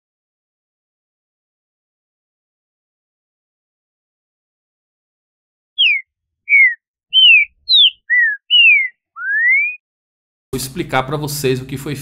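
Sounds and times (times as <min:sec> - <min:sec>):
bird whistling downward notes: 0:05.8 - 0:09.8.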